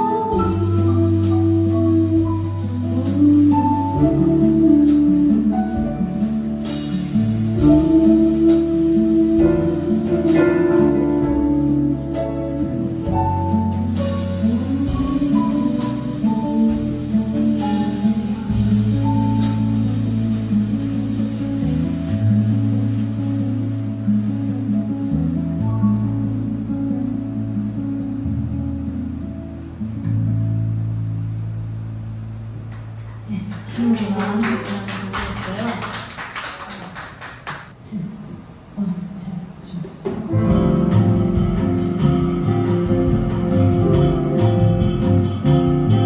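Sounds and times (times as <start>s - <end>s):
drums: 0.0s - 28.6s, 39.6s - 46.0s
bass holding long low notes: 0.0s - 34.2s, 40.3s - 46.0s
audience clapping: 33.5s - 37.8s.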